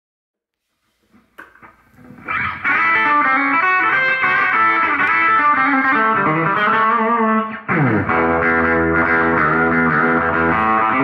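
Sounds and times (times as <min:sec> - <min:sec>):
electric guitar clicks and string taps: 0:01.1 - 0:06.9.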